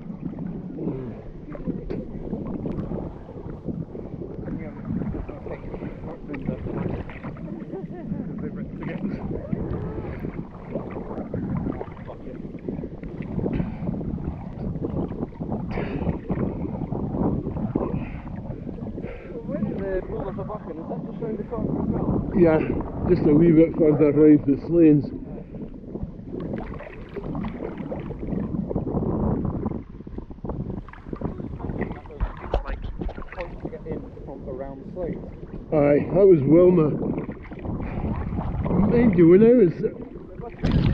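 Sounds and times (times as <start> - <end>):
seawater sloshing and slapping: 0.0 - 28.8, 29.5 - 40.9
wind buffeting microphone: 0.0 - 40.9.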